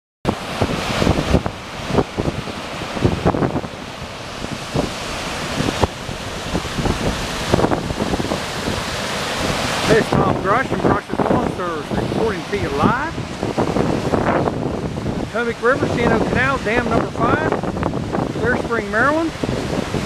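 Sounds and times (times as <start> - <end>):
river water rushing over dam: 0.3 - 20.0
wind buffeting microphone: 0.3 - 20.0
person speaking: 9.8 - 13.2, 15.3 - 17.5, 18.4 - 19.4.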